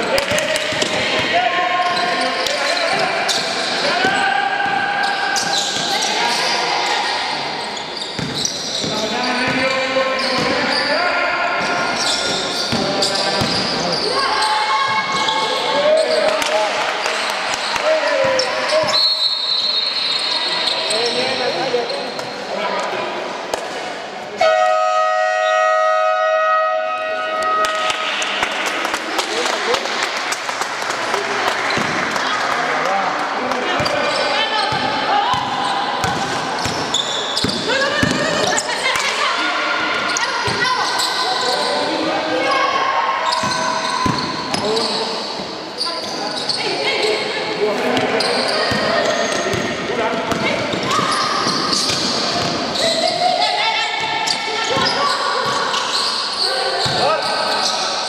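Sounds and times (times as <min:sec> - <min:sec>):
basketball bouncing on court: 0:08.2 - 0:09.7, 0:12.2 - 0:13.8, 0:33.7 - 0:39.0, 0:43.4 - 0:44.6, 0:48.0 - 0:53.2
high whistle: 0:18.9 - 0:20.8.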